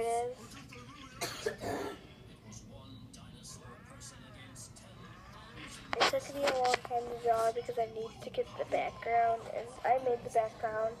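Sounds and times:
child coughing: 1.2 - 2.0.

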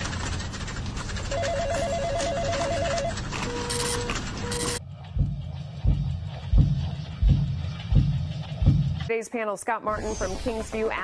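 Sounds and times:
electronic telephone ringing: 1.3 - 4.8
low thumps: 4.9 - 9.1.

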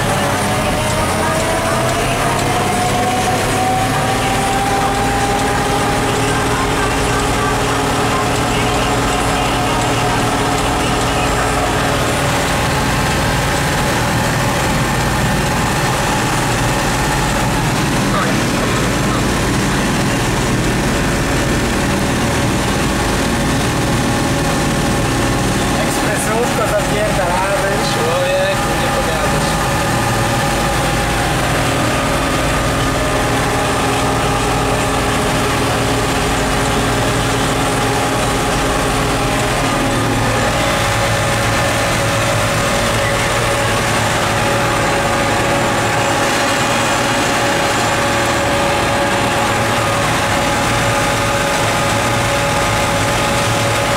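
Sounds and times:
tractor engine droning: 0.0 - 53.9.

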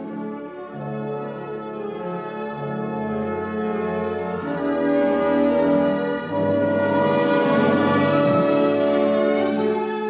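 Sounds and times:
orchestra playing sustained chords: 4.4 - 9.8.

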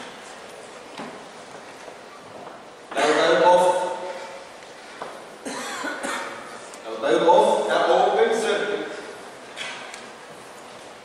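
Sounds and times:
man speaking: 2.9 - 4.4, 6.8 - 9.2
person coughing: 5.4 - 6.5.

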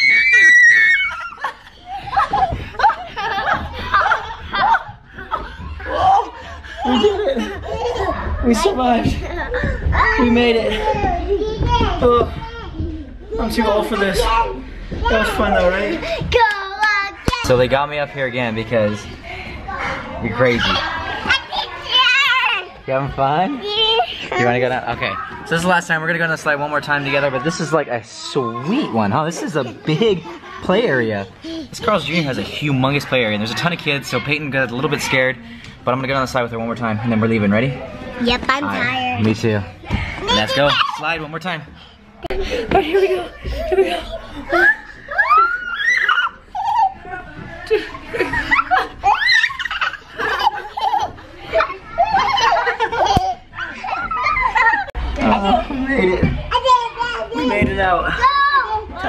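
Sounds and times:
children playing: 0.0 - 59.0.

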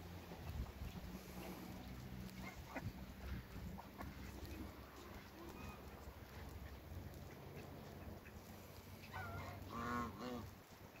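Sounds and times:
goose honking: 7.2 - 10.5.

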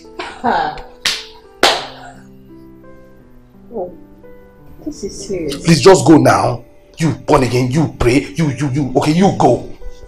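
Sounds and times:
soft film music: 0.0 - 10.0
sharp hand smacks: 1.0 - 2.0.

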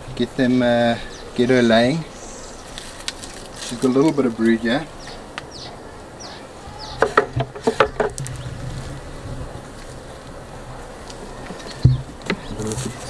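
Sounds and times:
honeybees buzzing: 0.0 - 13.0
wooden hive frames knocking: 6.8 - 8.4, 11.3 - 12.7.

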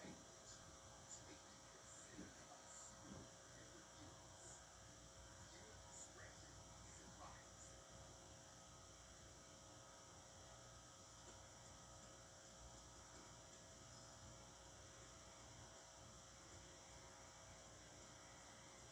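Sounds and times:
faint hum with hiss: 0.0 - 18.9.

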